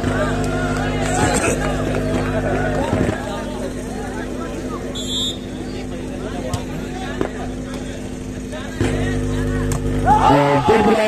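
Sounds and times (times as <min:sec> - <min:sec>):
crowd chattering: 0:00.0 - 0:11.0
ball smacks: 0:09.6 - 0:09.9.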